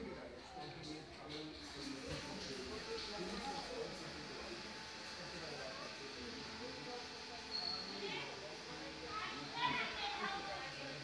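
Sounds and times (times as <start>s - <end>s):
children chattering and playing: 5.5s - 11.0s.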